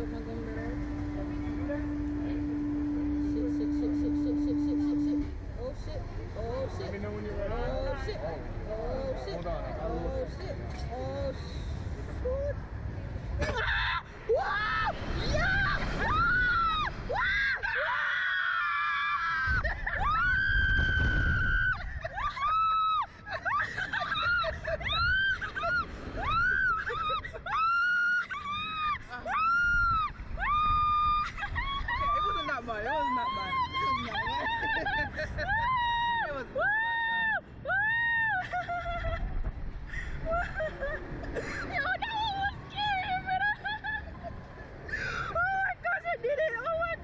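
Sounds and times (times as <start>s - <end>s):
lower wavering cry: 0.0s - 5.8s, 13.5s - 32.4s
low rumble: 0.0s - 6.6s
wind rumbling on microphone: 10.8s - 17.8s, 19.0s - 45.8s
girls screaming: 13.5s - 39.2s
woman squealing: 13.6s - 39.2s.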